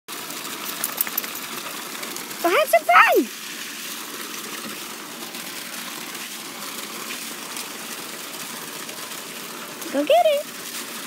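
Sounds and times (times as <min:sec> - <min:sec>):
hose water splashing onto grass: 0:00.1 - 0:11.0.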